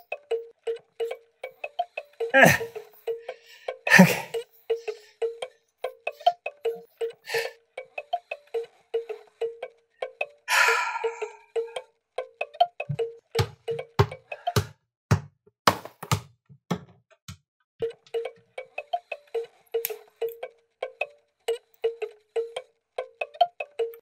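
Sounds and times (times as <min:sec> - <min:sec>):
music box plinking tune: 0:00.0 - 0:13.9, 0:17.8 - 0:24.0
breathy noise: 0:07.0 - 0:09.6, 0:10.4 - 0:11.9.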